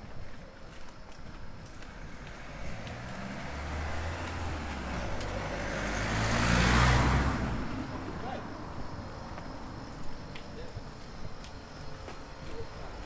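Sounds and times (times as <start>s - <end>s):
car passing by: 1.8s - 9.8s.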